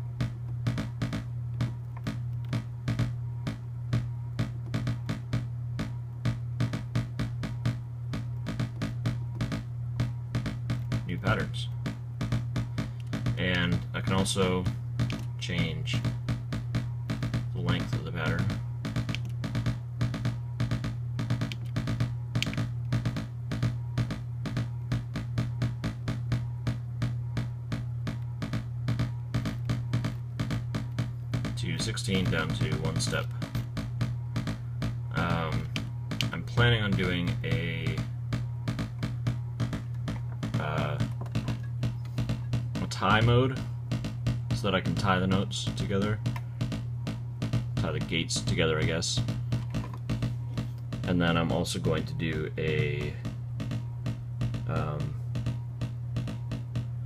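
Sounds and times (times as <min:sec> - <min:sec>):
steady low hum: 0:00.0 - 0:57.0
synth blips: 0:00.0 - 0:57.0.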